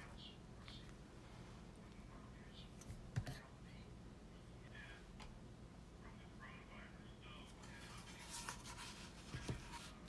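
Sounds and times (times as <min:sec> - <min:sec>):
marker scratching on hard surface: 0:07.6 - 0:10.0.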